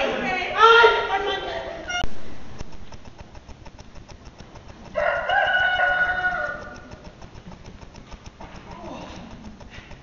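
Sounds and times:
rooster crowing: 4.9s - 7.1s.

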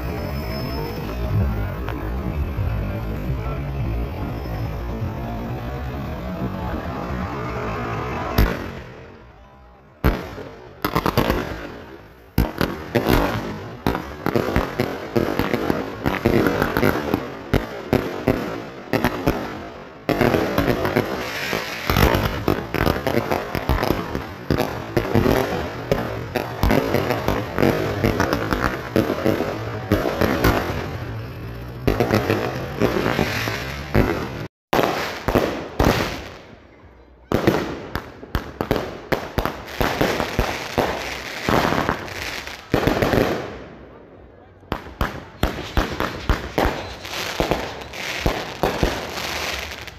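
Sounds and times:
firework bangs and crackles: 0.0s - 49.9s.

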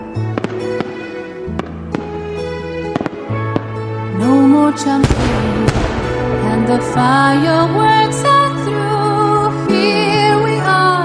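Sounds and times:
held chords: 0.0s - 9.4s
sharp percussion hits: 5.0s - 7.6s.

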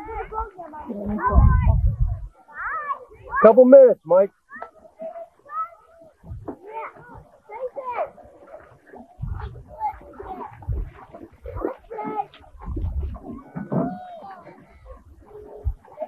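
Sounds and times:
low rumble on microphone: 0.0s - 2.3s, 8.9s - 16.0s
children and adults chattering: 0.0s - 16.0s.

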